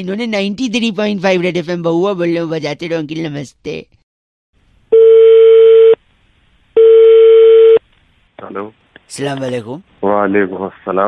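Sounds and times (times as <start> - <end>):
telephone line beeps: 5.0 - 6.0, 6.8 - 7.8.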